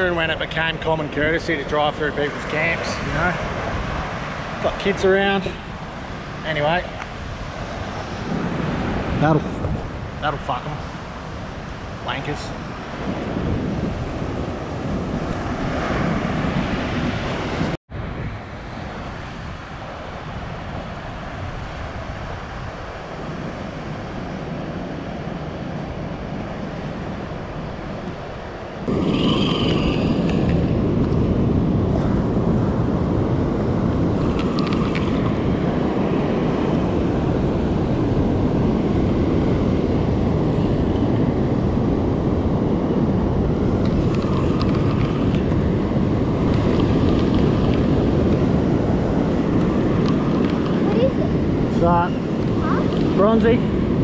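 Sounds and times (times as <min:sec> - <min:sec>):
surf rushing on beach: 0:00.0 - 0:54.0
wind buffeting microphone: 0:00.0 - 0:54.0.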